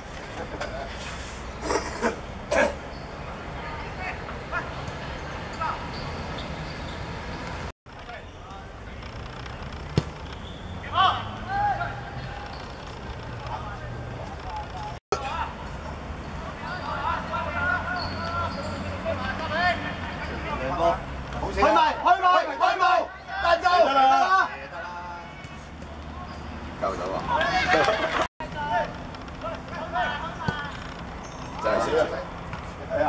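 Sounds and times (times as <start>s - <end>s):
ball being kicked: 9.9s - 10.2s
people shouting and calling: 21.5s - 25.6s.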